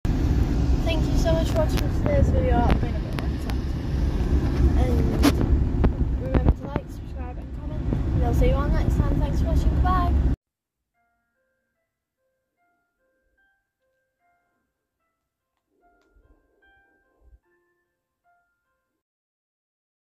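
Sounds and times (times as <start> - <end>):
car cabin road noise: 0.1 - 10.4
girl's voice: 0.8 - 3.8, 4.6 - 5.4, 6.1 - 10.3.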